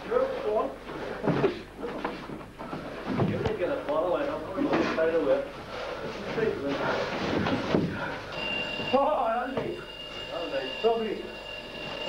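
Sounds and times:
indistinct voices talking: 3.3 - 12.0.

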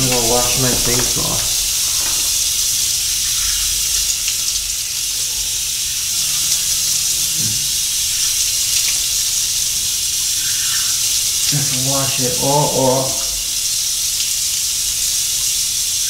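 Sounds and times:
sink tap running: 0.0 - 15.0.

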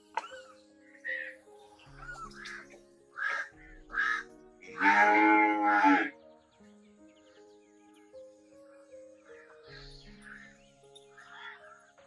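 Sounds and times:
background music with held notes: 0.0 - 12.0
calf mooing: 4.7 - 6.1.

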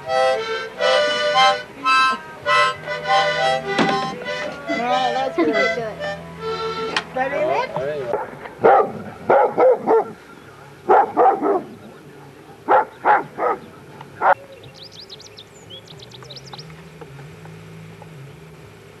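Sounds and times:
dog barking: 8.1 - 10.2, 10.8 - 11.8, 12.6 - 14.4.

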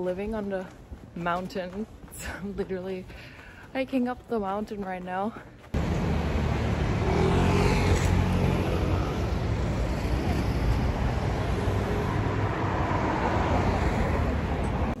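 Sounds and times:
road traffic noise: 5.6 - 15.0
vehicle passing close by: 5.8 - 15.0.

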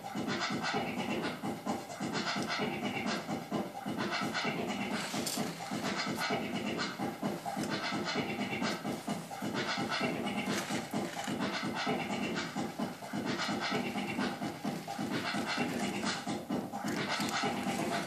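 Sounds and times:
wooden stick scraping paint: 4.9 - 18.0.

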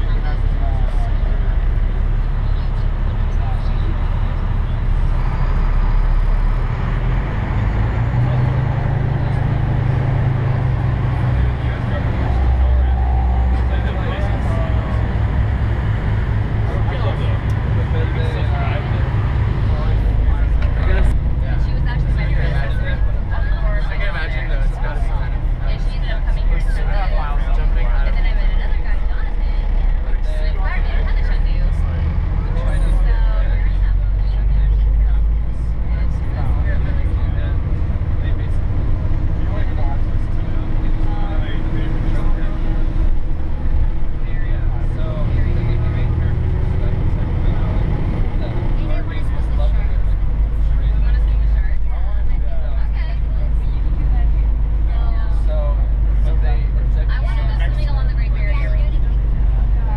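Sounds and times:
bus engine and tyres rumbling: 0.0 - 59.9
people talking: 0.0 - 59.9.

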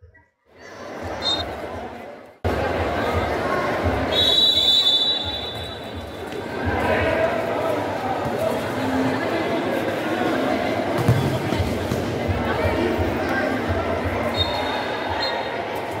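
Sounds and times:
spectators chattering: 0.4 - 16.0
referee's whistle blast: 1.2 - 1.4, 4.1 - 5.8.

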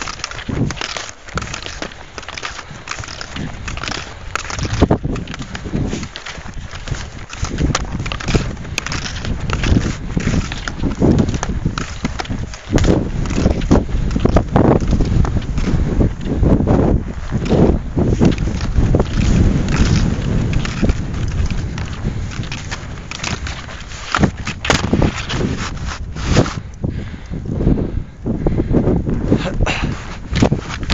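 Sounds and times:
rhythmic skiing strides: 0.0 - 30.9
wind buffeting microphone: 0.0 - 30.9.

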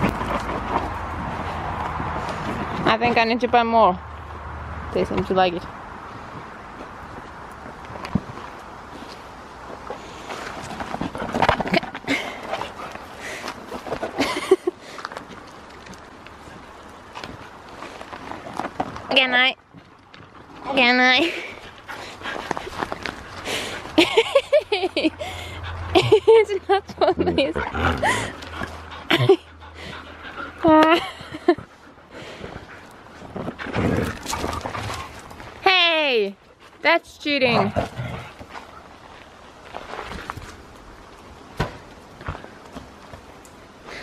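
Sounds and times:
dogs tussling: 32.4 - 35.6
scuffling on gravel: 37.8 - 41.2.

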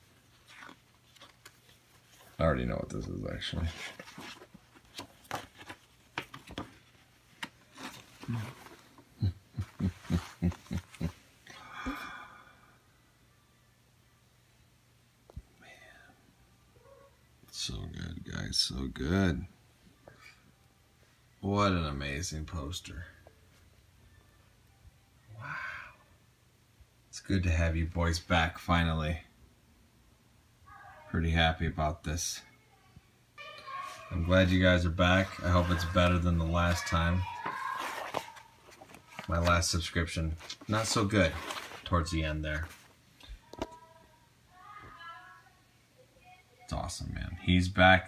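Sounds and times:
paper rustling and crackling: 3.4 - 9.1, 33.8 - 43.8
man exclaiming: 34.1 - 38.1.

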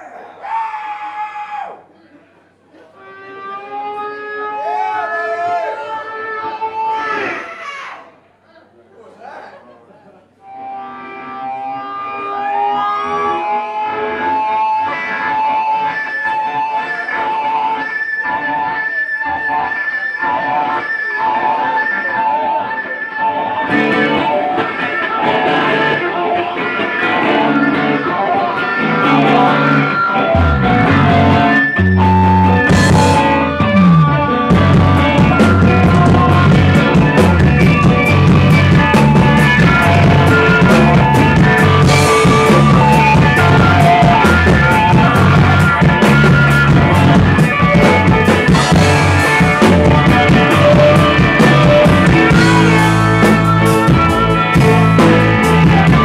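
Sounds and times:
electric guitar sustained notes: 3.0 - 7.4, 10.4 - 56.0
drums: 11.6 - 56.0
bass notes: 26.9 - 56.0.

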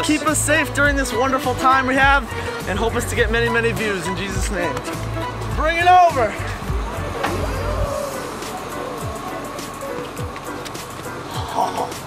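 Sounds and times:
background music with deep bass: 0.0 - 12.0.

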